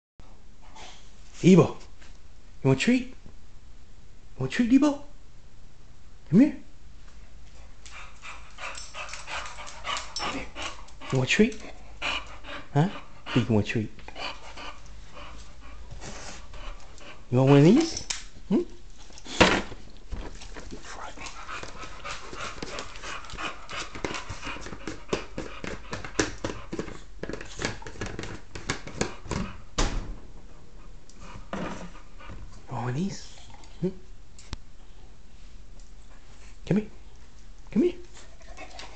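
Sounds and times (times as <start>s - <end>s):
dog panting: 7.6s - 18.0s, 20.5s - 29.7s, 30.8s - 33.8s, 38.1s - 38.9s
dog claws ticking on tiles: 7.8s - 11.7s, 20.6s - 29.4s.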